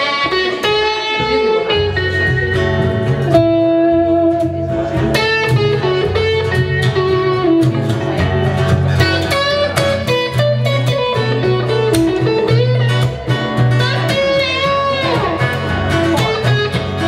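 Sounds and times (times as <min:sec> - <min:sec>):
electric guitar lead: 0:00.0 - 0:17.0
strummed acoustic guitar: 0:00.0 - 0:17.0.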